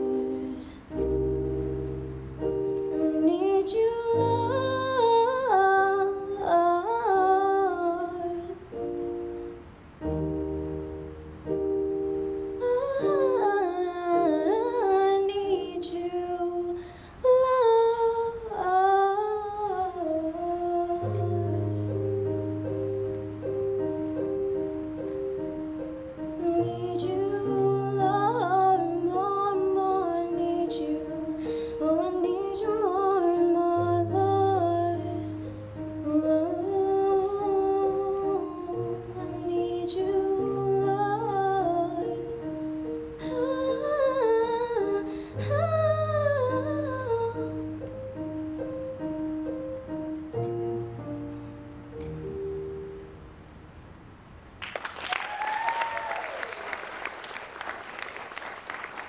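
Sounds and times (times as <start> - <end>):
woman singing wordlessly: 0.0 - 1.2, 2.9 - 8.9, 12.6 - 21.9, 26.3 - 42.6, 43.2 - 48.0
electric keyboard notes: 0.0 - 15.5, 19.6 - 53.5.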